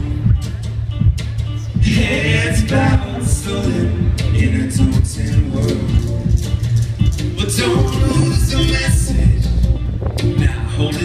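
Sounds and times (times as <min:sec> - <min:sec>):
keyboards: 0:00.0 - 0:11.0
steady low bass: 0:00.0 - 0:11.0
man singing into microphone: 0:01.8 - 0:06.5, 0:07.3 - 0:09.7, 0:10.4 - 0:11.0.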